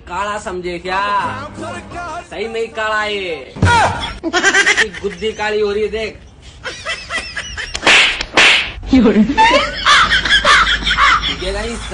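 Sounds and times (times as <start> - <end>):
boys laughing: 4.0 - 5.8, 6.5 - 8.0, 8.9 - 11.9
hand slaps on skin: 7.7 - 8.8.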